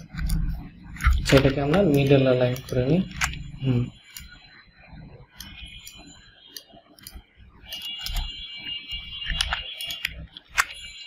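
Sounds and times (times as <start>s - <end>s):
computer mouse clicking: 0.0s - 4.4s, 5.2s - 10.8s.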